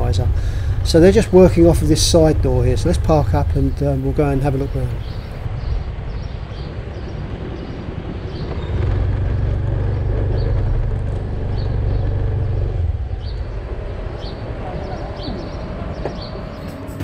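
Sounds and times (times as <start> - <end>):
motorbike engine running: 0.0 - 4.2
road and wind noise: 0.0 - 17.0.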